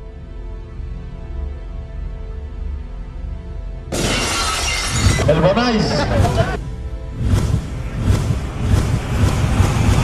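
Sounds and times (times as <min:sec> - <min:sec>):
background music: 0:00.0 - 0:10.0
glass shattering: 0:03.9 - 0:06.0.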